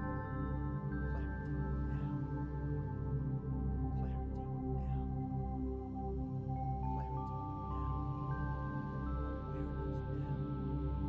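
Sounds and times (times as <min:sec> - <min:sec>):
ambient synth music: 0:00.0 - 0:11.0.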